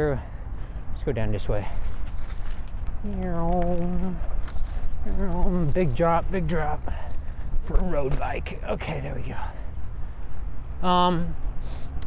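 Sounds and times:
wind rumble: 0:00.0 - 0:11.7
bicycle tyres rolling: 0:01.6 - 0:08.2.

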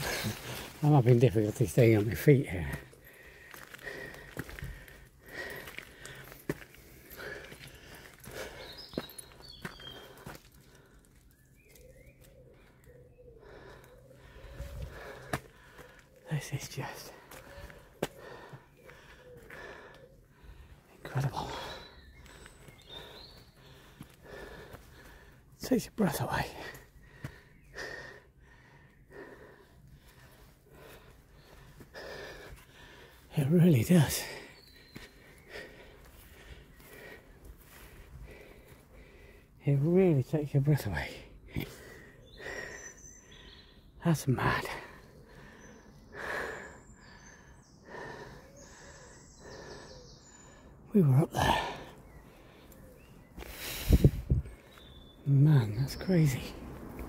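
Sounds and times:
footsteps on gravel: 0:00.0 - 0:10.7
person breathing heavily: 0:00.0 - 0:11.3, 0:12.4 - 0:39.6, 0:41.1 - 0:55.2
bird chirping: 0:00.0 - 0:56.8
bird cooing: 0:11.7 - 0:14.8, 0:19.2 - 0:20.3.

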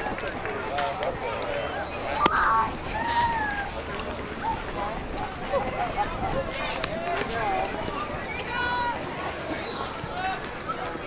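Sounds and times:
faint scattered voices: 0:00.0 - 0:11.0.

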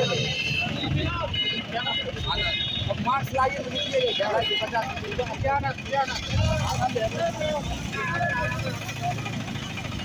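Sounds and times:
engines idling: 0:00.0 - 0:10.0
low rumble of road traffic: 0:00.0 - 0:10.0
voices talking: 0:00.0 - 0:10.0.

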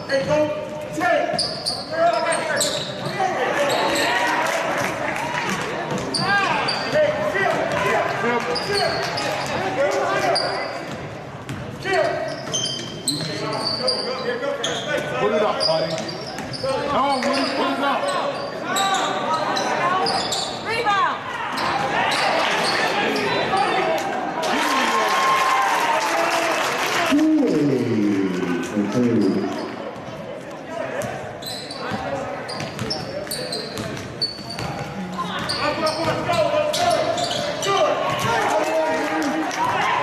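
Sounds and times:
sneaker squeaks: 0:00.0 - 0:04.2, 0:05.9 - 0:07.2, 0:08.5 - 0:23.9, 0:31.0 - 0:38.3.

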